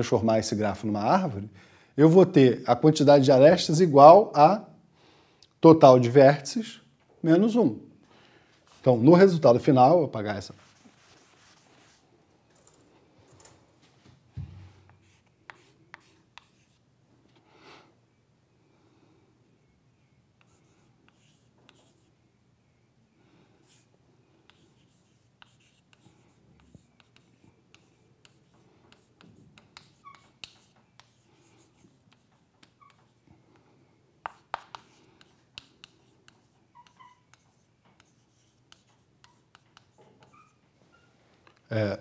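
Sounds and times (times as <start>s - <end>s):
chalk writing on blackboard: 10.6s - 12.0s, 14.9s - 16.8s, 20.4s - 22.1s, 23.6s - 23.9s, 24.5s - 41.6s.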